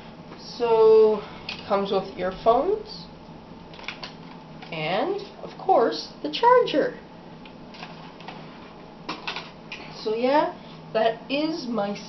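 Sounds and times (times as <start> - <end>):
low steady hum: 0.0 - 12.0
packaging clicks and rustles: 3.7 - 4.8.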